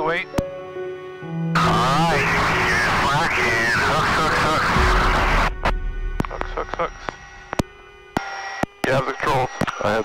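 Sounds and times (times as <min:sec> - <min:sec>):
intercom hum of fixed tones: 0:00.0 - 0:10.0
pilot speaking: 0:01.6 - 0:05.5, 0:06.2 - 0:07.4, 0:08.8 - 0:10.0.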